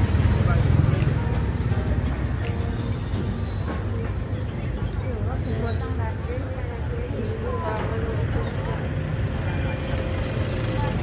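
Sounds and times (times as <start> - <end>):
faint voices: 0.0 - 11.0
low market rumble: 0.0 - 11.0.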